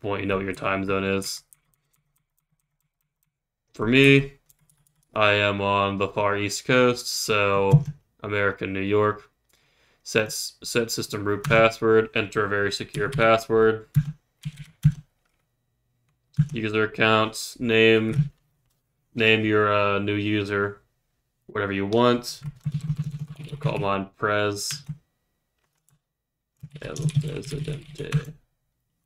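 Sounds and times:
rapid typing on keyboard: 1.4s - 3.4s, 4.4s - 5.2s, 12.8s - 15.4s, 16.3s - 16.8s, 22.4s - 23.9s, 26.6s - 28.4s
computer keyboard keystrokes: 1.5s - 3.3s, 4.4s - 5.1s, 14.0s - 15.4s.

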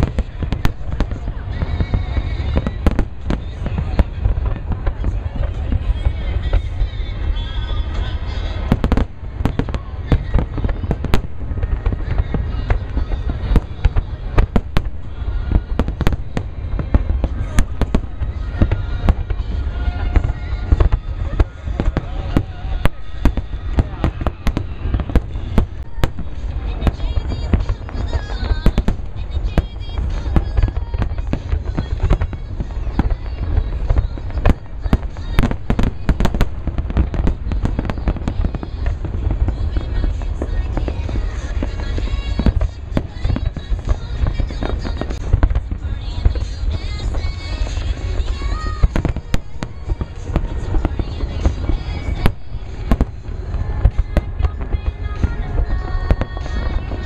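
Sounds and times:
fireworks bursting: 0.0s - 57.0s.

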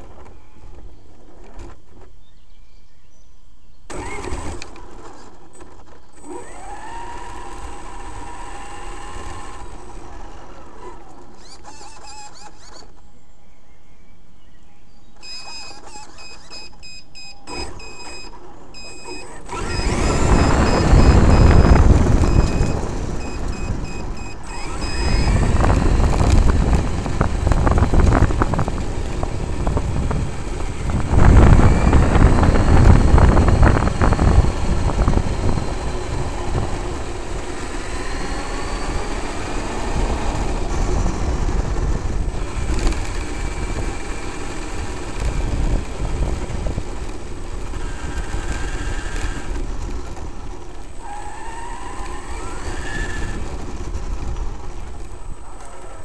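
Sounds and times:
electric motor whine: 3.9s - 13.1s, 15.2s - 56.0s
tyres rumbling on gravel: 17.5s - 56.0s
repeating high beep: 20.3s - 25.2s.

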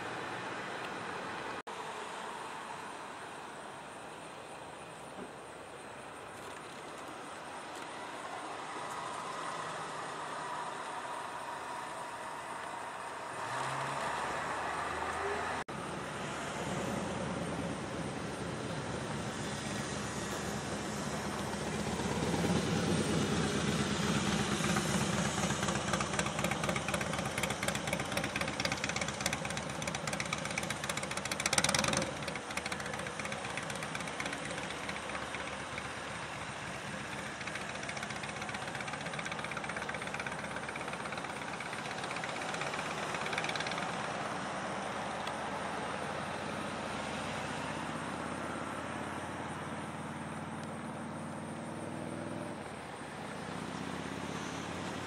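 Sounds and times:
road traffic: 0.0s - 55.0s
vehicle engine running: 7.7s - 55.0s.

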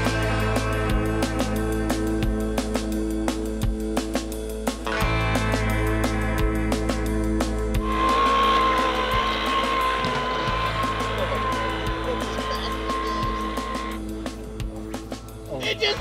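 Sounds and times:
background music with beat: 0.0s - 16.0s.

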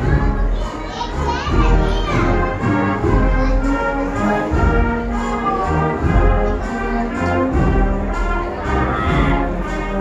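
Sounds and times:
brass band playing: 0.0s - 10.0s
children's voices: 0.0s - 10.0s
crowd chatter: 0.0s - 10.0s.

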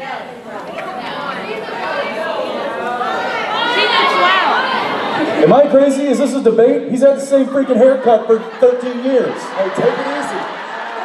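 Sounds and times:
audience talking hubbub: 0.0s - 11.0s.

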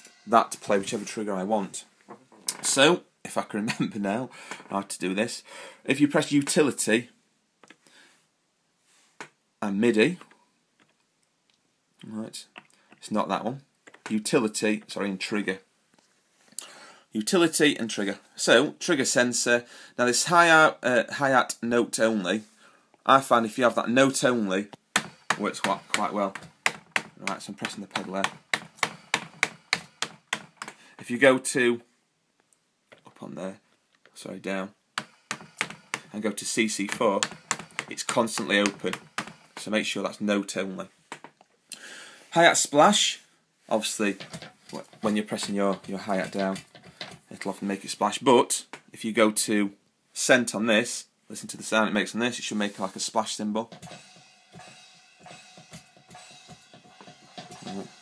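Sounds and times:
electronic hi-hat pedal ticks: 53.8s - 58.0s.

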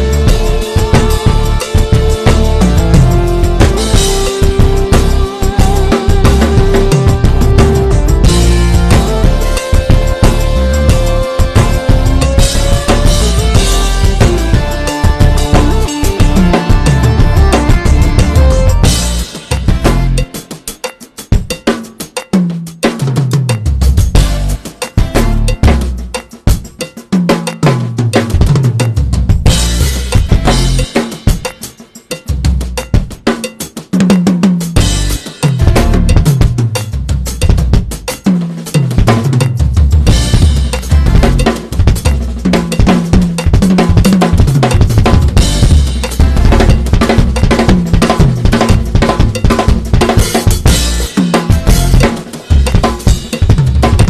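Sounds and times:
snare and tom drum fill: 0.0s - 54.0s
bass drum hits: 39.9s - 42.2s, 43.2s - 54.0s.

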